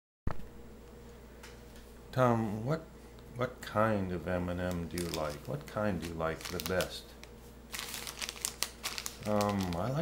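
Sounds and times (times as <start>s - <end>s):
plastic candy bag crinkling: 4.5s - 10.0s.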